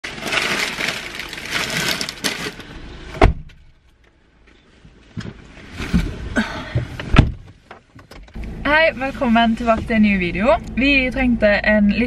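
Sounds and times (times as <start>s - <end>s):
plastic bags rustling: 0.0s - 2.7s
car door shutting: 3.1s - 3.7s, 5.1s - 8.5s.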